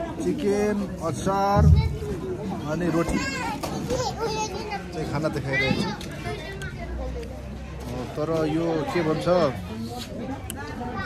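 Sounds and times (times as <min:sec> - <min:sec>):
crowd chatter: 0:00.0 - 0:11.0
children talking and calling out: 0:01.4 - 0:11.0.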